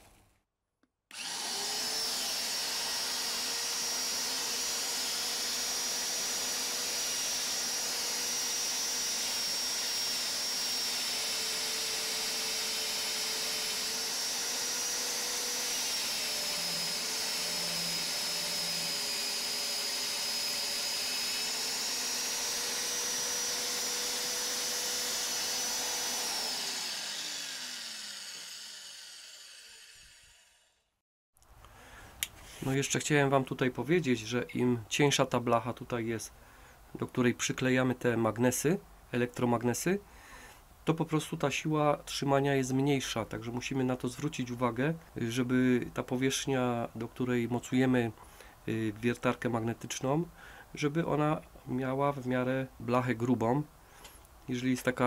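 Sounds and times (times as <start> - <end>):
magnetic drill motor whining: 1.1 - 30.6
cutter boring through steel: 1.1 - 30.8.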